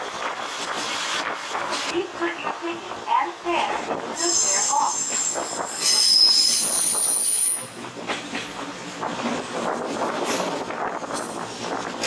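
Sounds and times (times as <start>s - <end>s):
train wheels rumbling on track: 0.0s - 12.0s
train wheels squealing: 4.2s - 7.8s.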